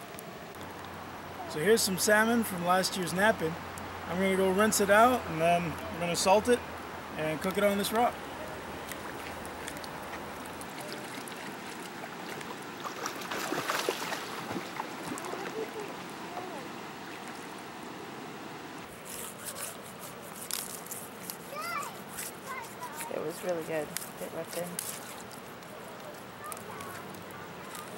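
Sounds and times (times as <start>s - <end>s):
river water over stones: 0.0s - 27.9s
fish splashing in water: 8.4s - 18.1s.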